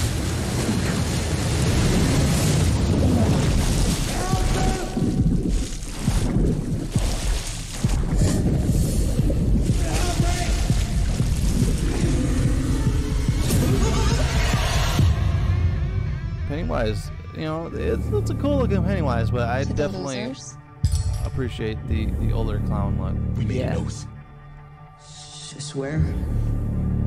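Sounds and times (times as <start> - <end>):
deep booms: 1.6 - 17.2
dark trailer music: 3.4 - 27.0
heavy low rumble: 7.9 - 19.7.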